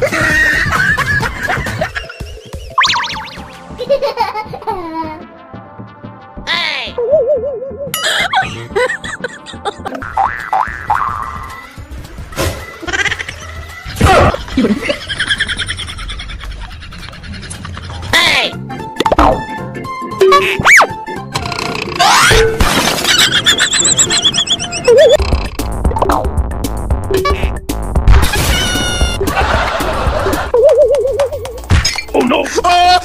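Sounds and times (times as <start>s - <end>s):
people laughing: 0.0s - 2.6s, 7.0s - 10.0s, 12.8s - 18.1s, 28.7s - 31.3s
background music: 0.0s - 33.0s
cartoon boing sound effects: 2.8s - 3.4s, 10.0s - 11.4s, 20.2s - 20.9s.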